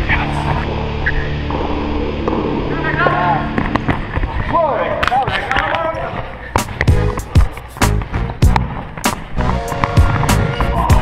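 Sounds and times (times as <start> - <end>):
running footsteps: 1.4 - 11.0
sneakers squeaking: 3.4 - 11.0.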